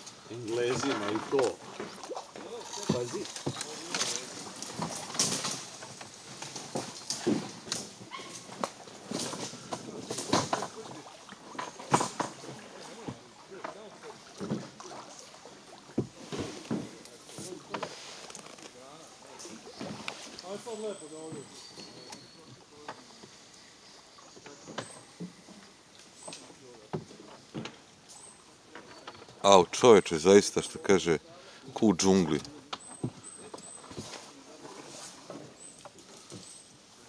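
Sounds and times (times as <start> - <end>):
paddle splashing in water: 0.0 - 29.7, 31.6 - 37.0.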